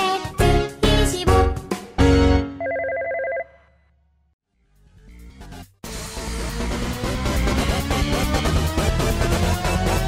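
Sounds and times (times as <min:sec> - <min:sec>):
music: 0:00.0 - 0:02.6, 0:04.4 - 0:10.0.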